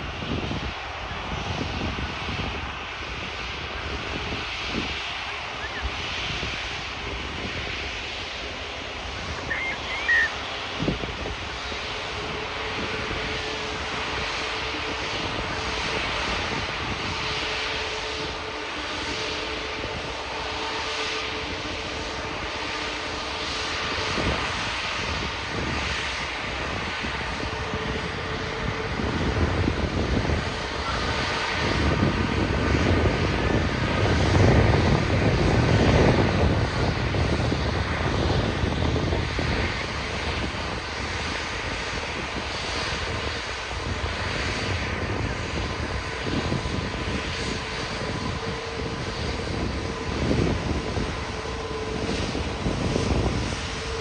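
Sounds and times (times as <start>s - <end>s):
jet engines rumbling with whine: 0.0s - 54.0s.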